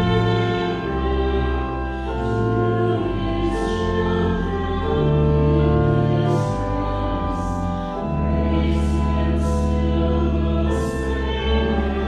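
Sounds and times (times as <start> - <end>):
held keyboard chords: 0.0 - 12.0
voices singing a hymn: 0.0 - 12.0.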